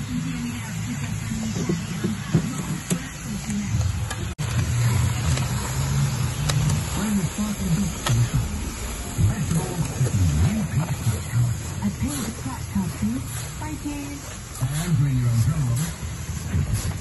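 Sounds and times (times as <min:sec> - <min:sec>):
mixer motor running: 0:00.0 - 0:17.0.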